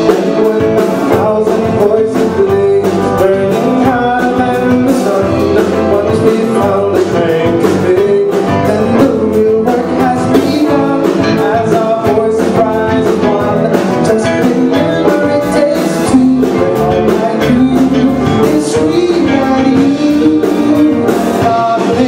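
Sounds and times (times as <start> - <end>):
man singing into microphone: 0.0 - 22.0
rock band playing: 0.0 - 22.0.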